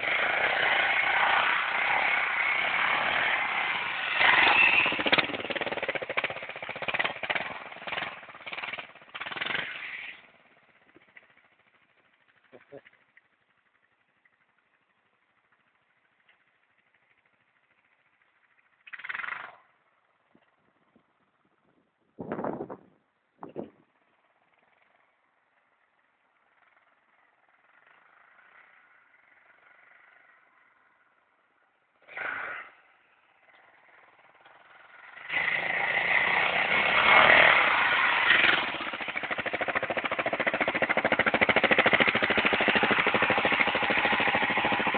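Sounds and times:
faint motorcycle engine idling: 0:03.4 - 0:32.1, 0:32.7 - 0:35.3, 0:36.6 - 0:44.9.

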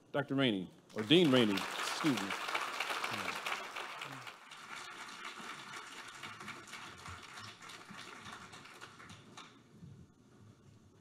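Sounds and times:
audience applauding: 0:00.9 - 0:09.5.

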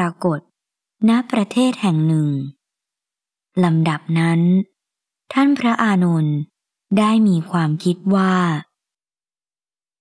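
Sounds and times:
narrator speaking: 0:00.0 - 0:02.6, 0:03.6 - 0:08.8.

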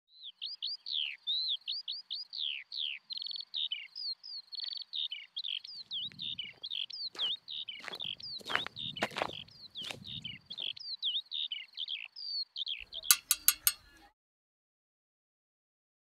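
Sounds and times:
birds chirping and singing: 0:00.1 - 0:14.0.

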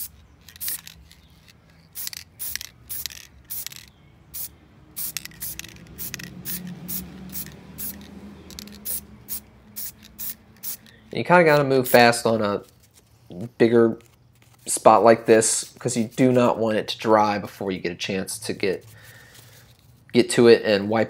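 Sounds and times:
spray paint can hissing: 0:00.0 - 0:01.0, 0:01.9 - 0:10.9, 0:11.8 - 0:12.2.

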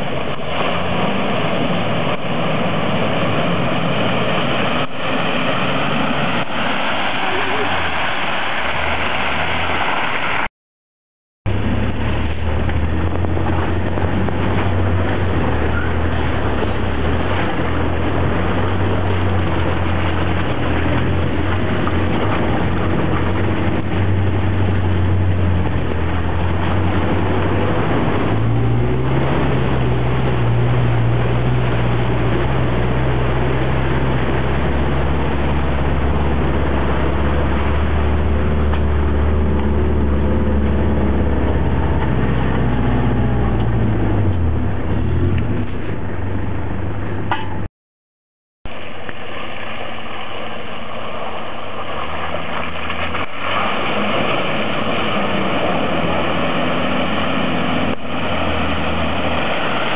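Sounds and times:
vehicle engine running: 0:11.5 - 0:47.7, 0:51.0 - 0:59.9.

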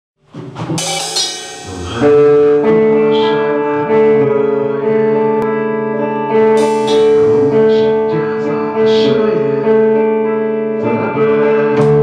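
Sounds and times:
drum kit: 0:00.2 - 0:03.2, 0:06.5 - 0:08.0
cymbal crash: 0:00.8 - 0:02.7, 0:06.6 - 0:07.3
electric guitar held notes: 0:00.8 - 0:11.0.

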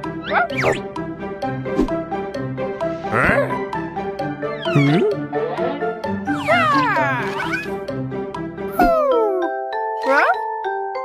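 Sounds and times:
cartoon background music: 0:00.0 - 0:11.0
high animal-like vocal cries: 0:04.6 - 0:07.8.

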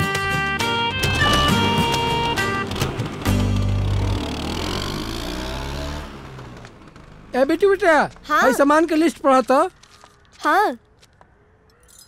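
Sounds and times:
motor scooter pulling away: 0:00.6 - 0:09.0.

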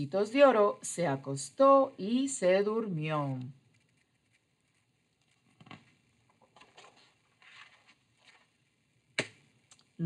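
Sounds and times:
paper page rustling: 0:03.7 - 0:08.6.

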